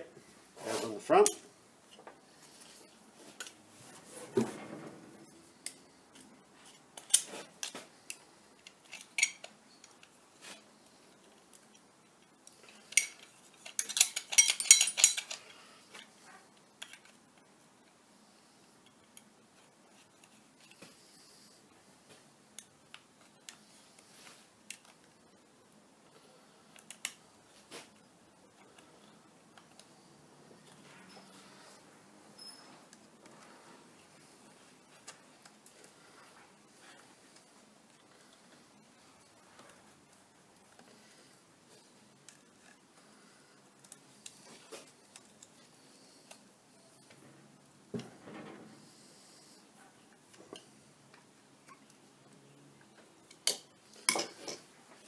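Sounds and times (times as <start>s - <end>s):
metallic clicks of small parts: 5.6s - 10.2s, 11.2s - 16.1s, 53.2s - 54.7s.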